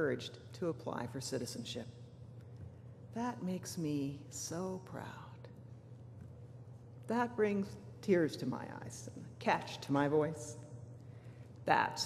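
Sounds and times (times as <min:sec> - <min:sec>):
woman speaking over microphone: 0:00.0 - 0:01.9, 0:03.1 - 0:05.4, 0:07.1 - 0:10.6, 0:11.7 - 0:12.0
low microphone hum: 0:00.0 - 0:12.0.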